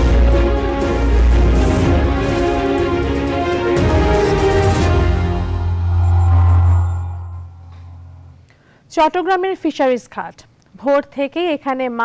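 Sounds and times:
deep bass note: 0:04.8 - 0:08.5.

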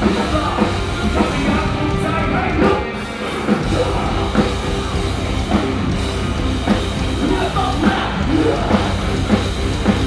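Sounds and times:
drum kit beat: 0:00.0 - 0:10.0
electric guitar: 0:00.0 - 0:10.0
live rock band playing: 0:00.0 - 0:10.0.

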